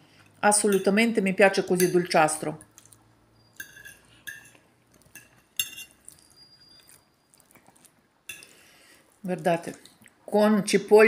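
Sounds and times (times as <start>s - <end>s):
fork clinking on plate: 3.5s - 7.0s.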